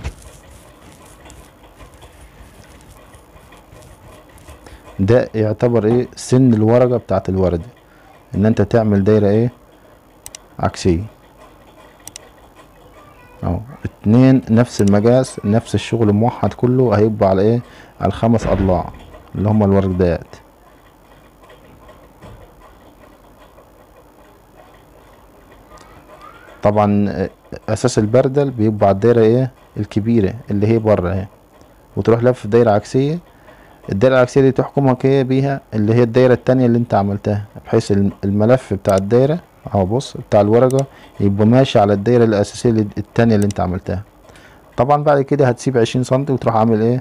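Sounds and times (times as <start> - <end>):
pencil scratching on board: 0.0 - 4.8
low background noise: 0.0 - 47.0.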